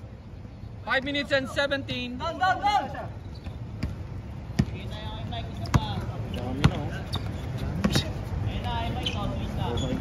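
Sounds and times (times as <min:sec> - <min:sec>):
basketball bouncing on hard court: 0:03.8 - 0:04.8, 0:05.6 - 0:08.1.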